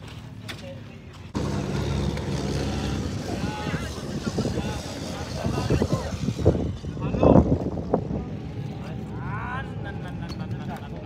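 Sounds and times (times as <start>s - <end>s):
quad bikes idling: 0.0s - 11.0s
people talking: 2.4s - 7.5s, 8.1s - 11.0s.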